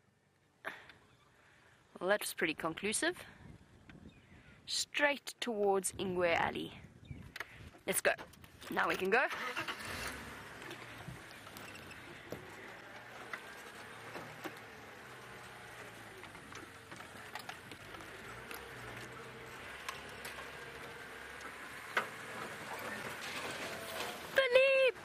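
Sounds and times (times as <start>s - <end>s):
vehicle engine hum: 6.0s - 25.0s
vehicle knocks and rattles: 10.2s - 24.4s.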